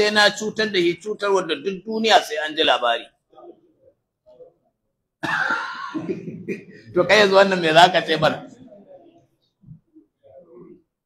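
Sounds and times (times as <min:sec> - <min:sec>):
man coughing: 0:05.2 - 0:06.9.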